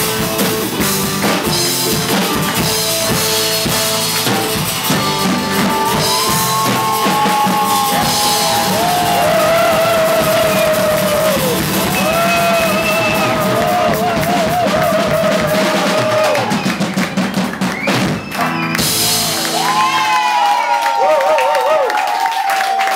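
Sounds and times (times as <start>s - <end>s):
acoustic guitar: 0.0s - 15.5s
drum kit: 0.0s - 20.6s
bass: 0.0s - 21.7s.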